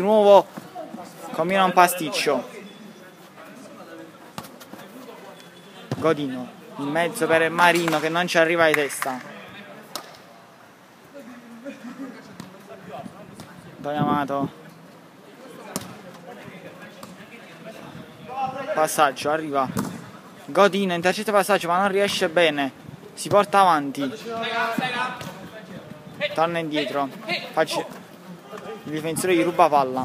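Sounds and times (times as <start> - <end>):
faint voices of players: 0.0 - 8.0, 9.1 - 20.5, 24.0 - 30.0
football being kicked: 19.7 - 20.0.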